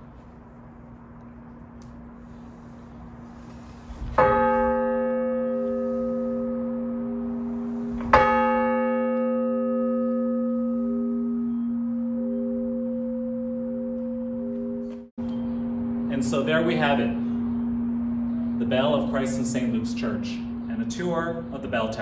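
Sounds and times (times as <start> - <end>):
church bell tolling: 4.2 - 22.0.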